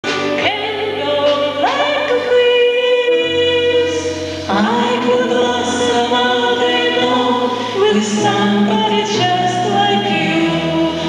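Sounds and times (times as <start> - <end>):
live band playing: 0.0 - 11.0
woman singing into a microphone: 0.1 - 11.0.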